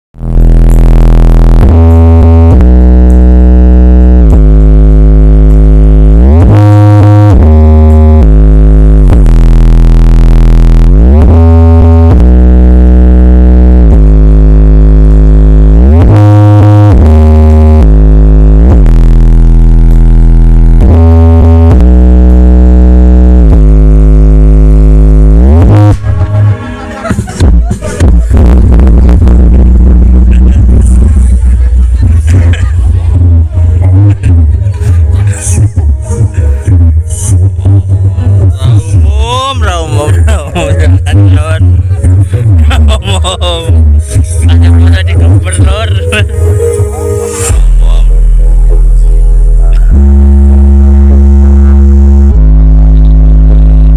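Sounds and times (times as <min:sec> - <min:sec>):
deep sliding bass notes: 0:00.1 - 0:53.9
loud music from speakers: 0:00.2 - 0:53.9.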